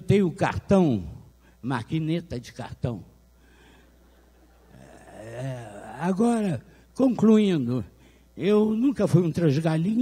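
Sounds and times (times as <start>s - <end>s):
man's breathy drawn-out hum: 4.7s - 6.0s.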